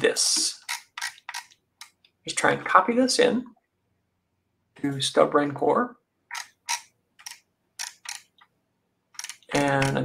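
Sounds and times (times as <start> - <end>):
mouse scroll wheel clicking: 0.6 - 2.0, 6.3 - 8.4, 9.2 - 10.0.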